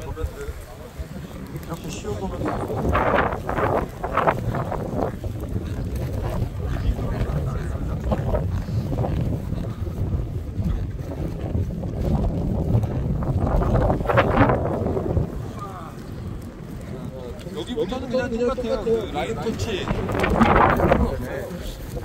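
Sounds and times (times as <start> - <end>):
heavy low rumble: 0.0 - 22.0
people talking in background: 0.0 - 22.0
wind buffeting microphone: 0.0 - 22.0.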